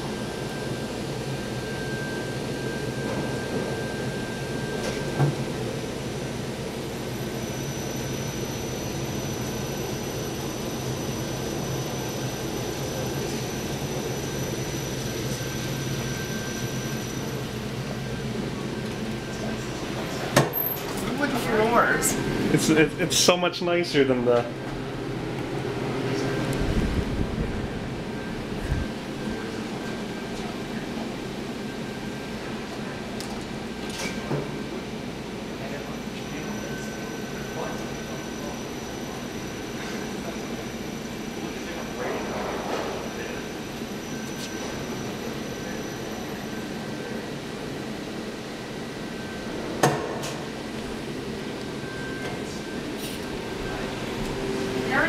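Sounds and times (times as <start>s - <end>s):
elevator low rumble: 0.0s - 33.8s, 37.2s - 55.0s
elevator hum with high whine: 0.0s - 55.0s.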